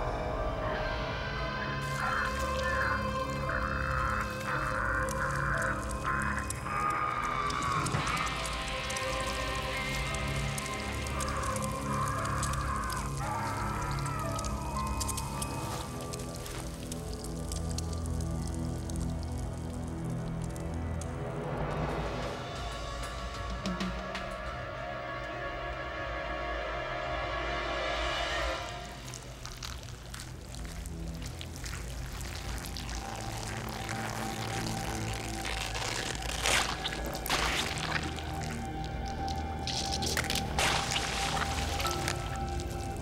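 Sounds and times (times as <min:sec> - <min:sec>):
droning horror score: 0:00.0 - 0:43.0
scratchy texture: 0:01.8 - 0:21.0, 0:28.2 - 0:43.0.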